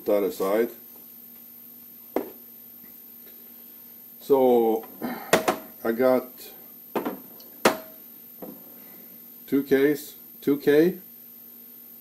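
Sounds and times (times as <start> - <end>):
faint steady hum: 0.0 - 12.0
thin high whine: 0.0 - 12.0.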